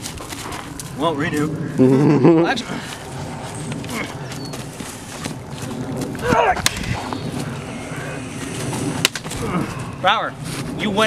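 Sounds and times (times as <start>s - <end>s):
low rustling movement: 0.0s - 11.0s
prop blades clacking: 2.4s - 11.0s.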